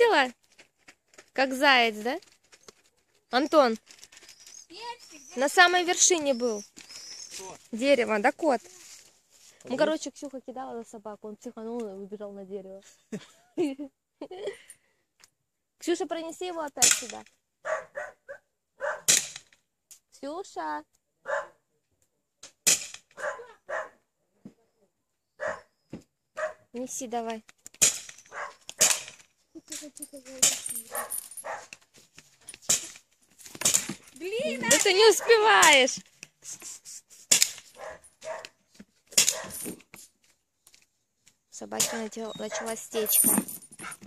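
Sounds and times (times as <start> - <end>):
dog barking: 17.6 - 19.1, 21.2 - 21.6, 23.2 - 24.0, 25.4 - 25.7, 26.4 - 26.7, 28.3 - 28.7, 30.9 - 31.7, 35.1 - 35.5, 37.8 - 38.6, 39.2 - 39.6, 41.8 - 42.8.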